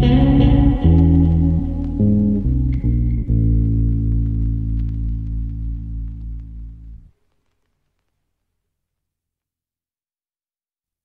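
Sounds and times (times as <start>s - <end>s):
bass-heavy held chord: 0.0s - 7.0s.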